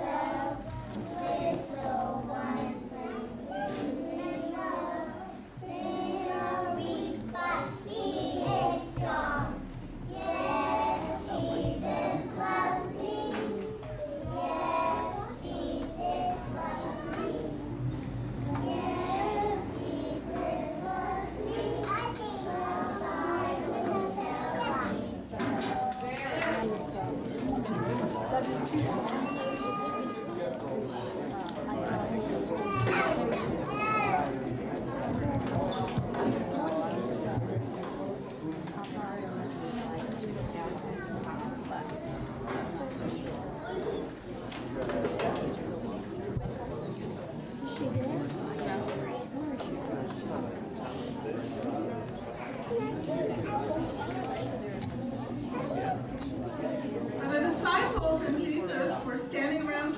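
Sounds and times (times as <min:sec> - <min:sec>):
young children singing: 0:00.0 - 0:26.0
children chattering: 0:00.0 - 0:59.9.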